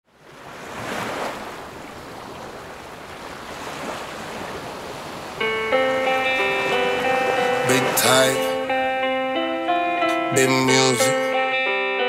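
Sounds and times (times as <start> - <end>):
surf-like rushing noise: 0.1 - 11.2
plucked guitar notes: 5.4 - 12.0.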